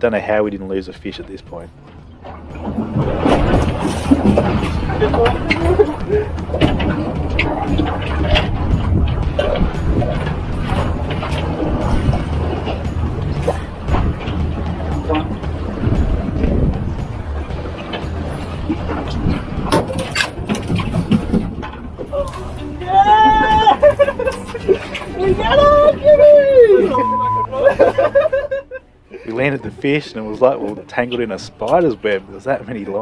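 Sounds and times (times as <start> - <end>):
wind: 0.0 - 33.0
water splashing against boat: 0.3 - 33.0
knocks and clicks: 1.8 - 22.1.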